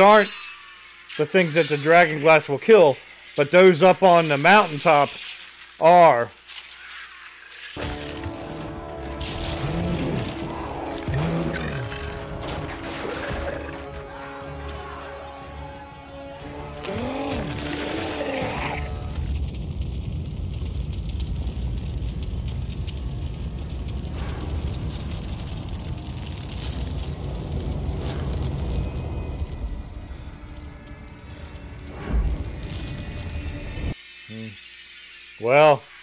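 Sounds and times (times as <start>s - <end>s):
soundtrack music: 7.8s - 19.2s
rumbling battle noise: 7.8s - 34.0s.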